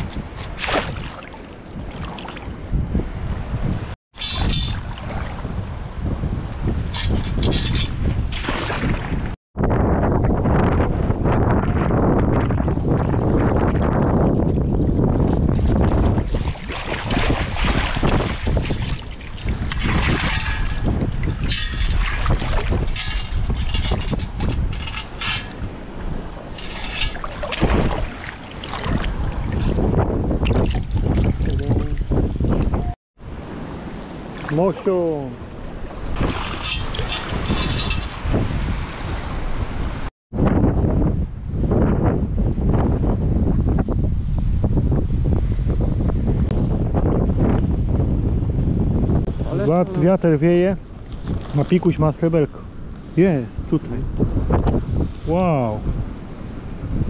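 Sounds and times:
water splashing and sloshing: 0.0 - 9.4, 12.3 - 40.1, 50.8 - 52.0
wind rumbling on microphone: 0.0 - 57.0.

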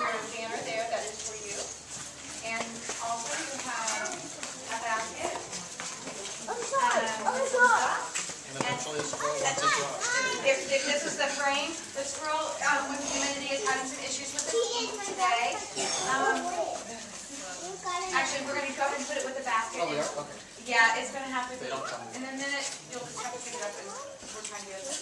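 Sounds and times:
indistinct chatter of voices: 0.0 - 25.0.

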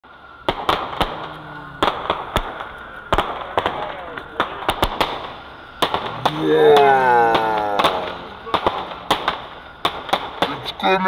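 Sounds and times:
fireworks bangs: 0.0 - 11.0.

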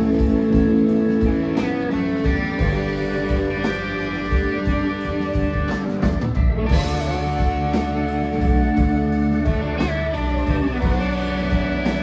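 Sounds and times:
bass guitar: 0.0 - 12.0
electric guitars: 0.0 - 12.0
keyboard: 0.0 - 12.0.

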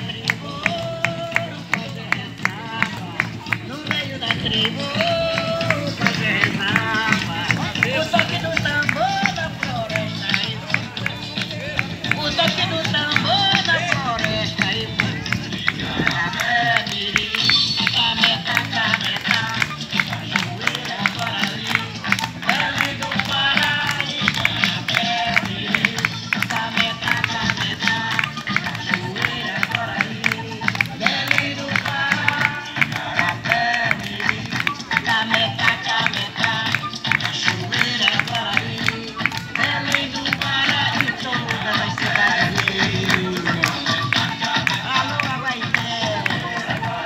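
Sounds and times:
voices singing: 0.0 - 47.0.

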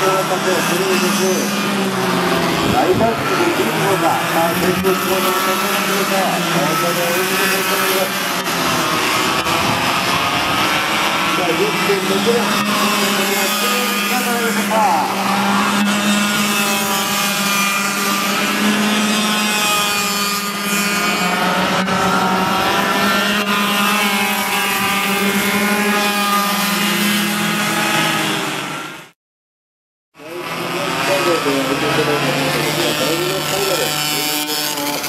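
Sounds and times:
kart engines running: 0.0 - 29.1, 30.2 - 35.0.

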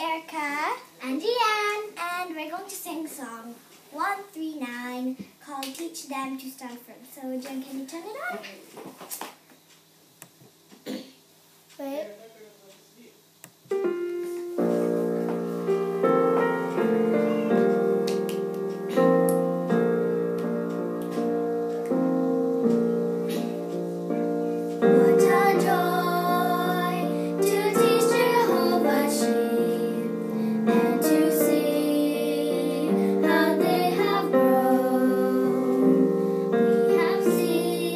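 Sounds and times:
hymn piano over speaker: 13.7 - 37.9
girls singing: 24.8 - 37.9.

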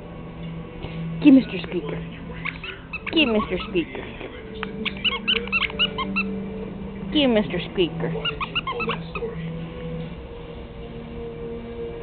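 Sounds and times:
squeaky dog toy squeaking: 2.4 - 4.0, 4.7 - 6.4, 7.4 - 9.3.

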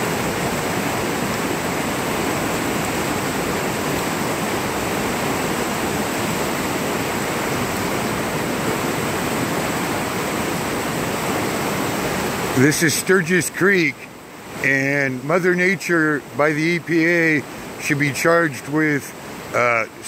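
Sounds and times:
creek rushing over rocks: 0.0 - 20.0.

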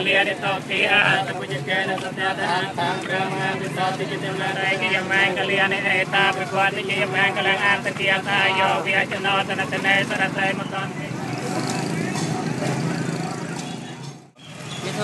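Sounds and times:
monks chanting: 0.0 - 10.9
street traffic: 0.0 - 15.0.

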